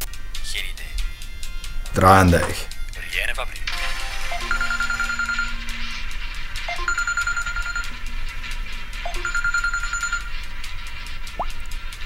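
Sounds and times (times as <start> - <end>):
smartphone ringing: 4.2 - 5.6, 6.7 - 8.0, 9.1 - 10.4.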